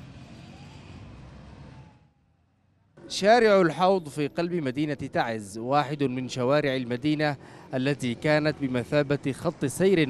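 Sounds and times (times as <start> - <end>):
faint engine whine: 0.0 - 10.0
vehicle engines passing: 0.0 - 10.0.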